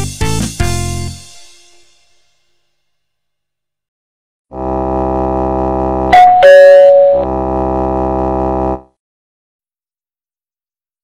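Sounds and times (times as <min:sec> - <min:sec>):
steady synthesized chord: 0:04.6 - 0:08.8
falling two-note chime: 0:06.1 - 0:07.3.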